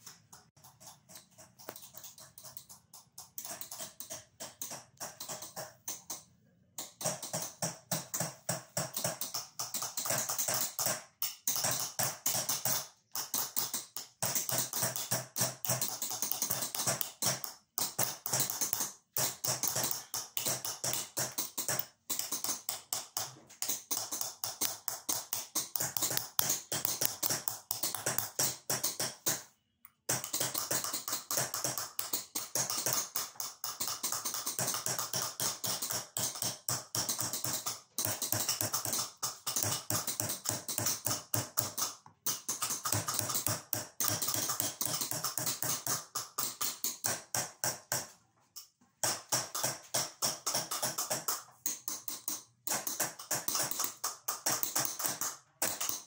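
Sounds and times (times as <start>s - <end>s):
hammer tapping chisel on metal: 0.0s - 48.2s, 49.0s - 56.0s.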